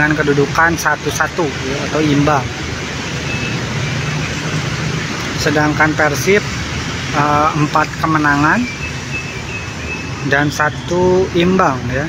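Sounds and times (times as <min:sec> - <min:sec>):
cars passing: 0:00.0 - 0:12.0
motorbikes passing: 0:00.0 - 0:12.0.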